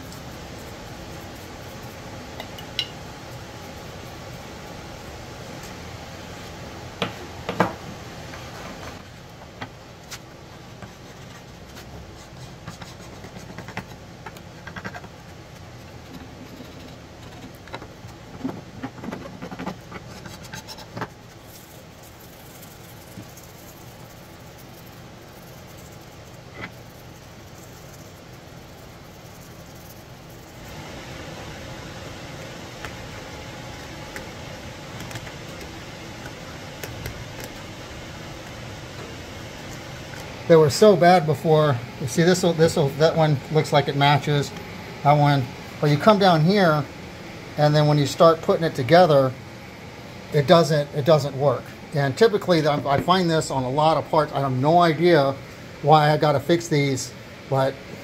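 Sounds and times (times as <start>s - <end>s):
low background hum: 0.0s - 58.0s
hand scraper scratching wood: 18.4s - 21.2s.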